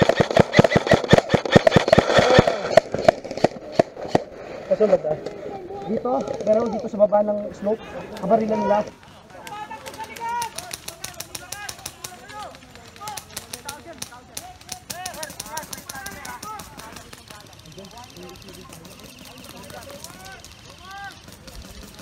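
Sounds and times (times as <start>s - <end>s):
airsoft guns firing: 0.0s - 4.3s, 8.2s - 22.0s
distant voices shouting: 5.3s - 22.0s.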